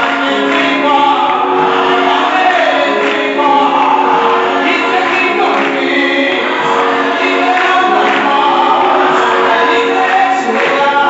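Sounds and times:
group singing gospel: 0.0s - 11.0s.

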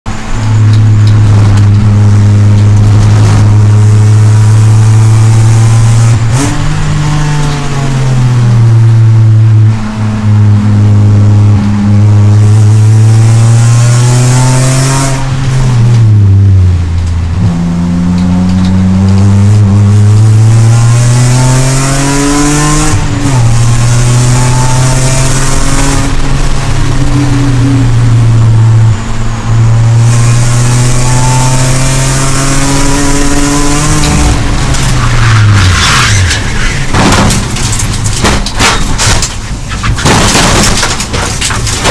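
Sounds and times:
race car engine revving through gears: 0.1s - 41.0s
wind and road noise: 0.1s - 41.9s.

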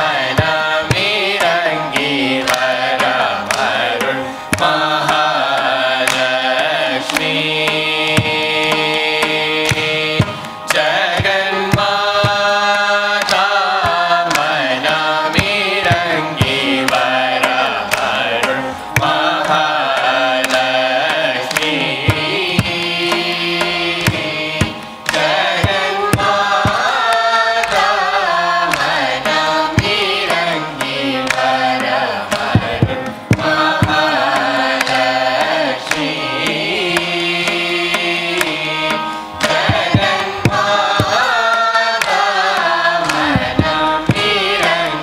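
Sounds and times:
group of voices singing: 0.0s - 45.0s
violin accompaniment: 0.0s - 45.0s.

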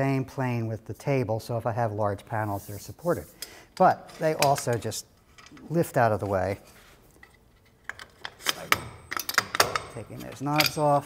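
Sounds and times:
metal bars clanking on metal: 8.3s - 11.0s.

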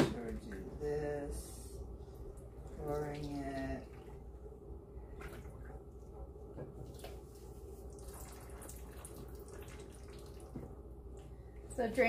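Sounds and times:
liquid pouring in thin stream: 7.8s - 10.5s.

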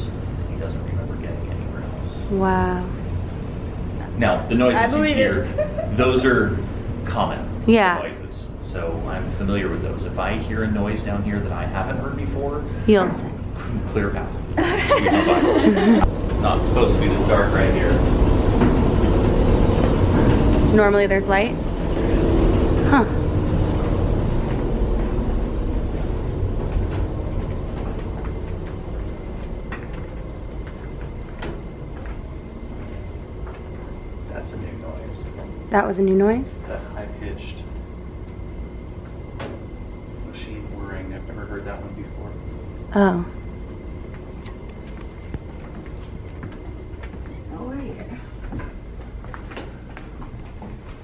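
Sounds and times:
low machine rumble: 0.0s - 51.0s
high-pitched machine whirring: 4.0s - 29.9s
footsteps on walkway: 23.9s - 34.0s, 44.0s - 51.0s.

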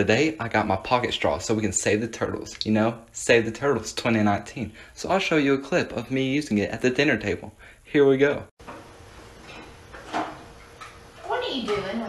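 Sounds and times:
people at dinner table: 9.4s - 12.0s.

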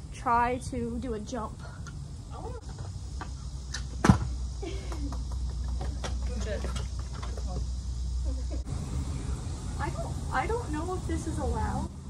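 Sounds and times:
scooter wheels rolling on concrete: 1.8s - 7.7s.

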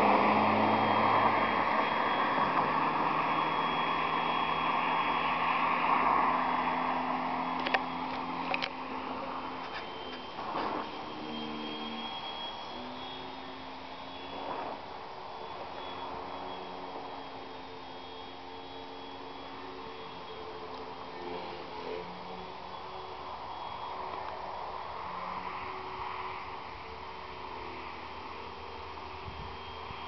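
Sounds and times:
electric motor and propeller whine: 0.0s - 30.0s.

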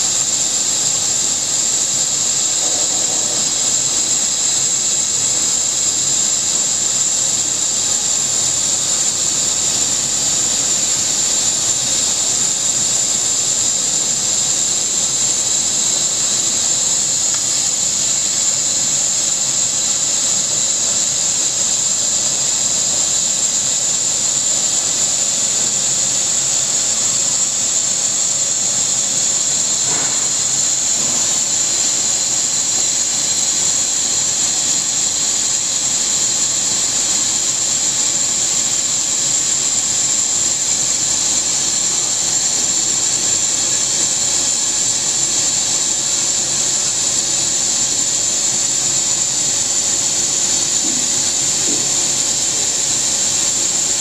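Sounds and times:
laser cutter hissing: 0.0s - 54.0s.

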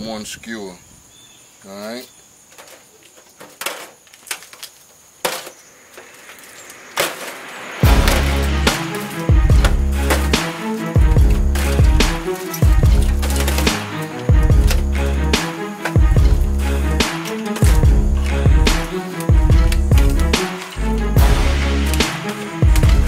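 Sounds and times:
music with heavy bass beat: 7.8s - 23.0s.

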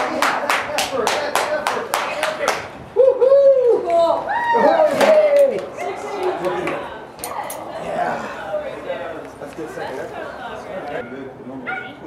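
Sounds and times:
hands clapping in rhythm: 0.0s - 2.7s.

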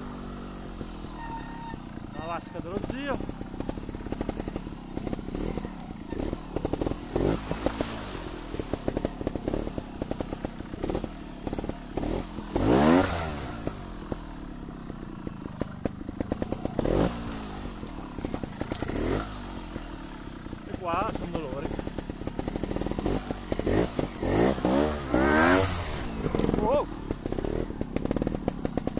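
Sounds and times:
motorcycle engine with throttle blips: 0.0s - 28.9s.

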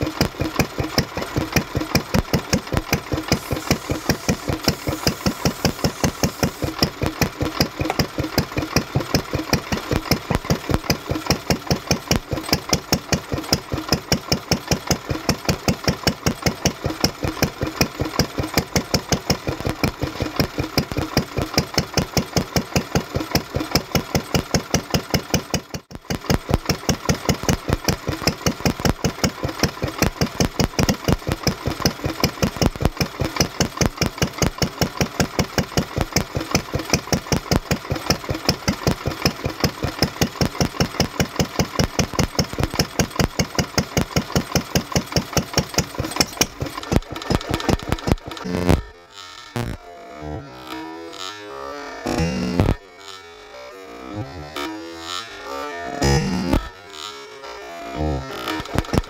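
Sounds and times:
stationary engine running: 0.0s - 59.0s.

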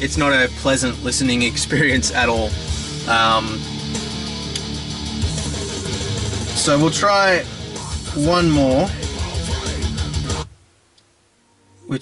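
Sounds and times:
heavy metal through car speakers: 0.0s - 10.7s.

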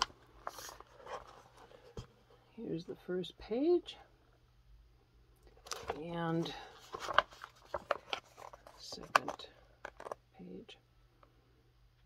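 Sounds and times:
paper pages turning: 0.0s - 2.1s, 5.6s - 10.2s.

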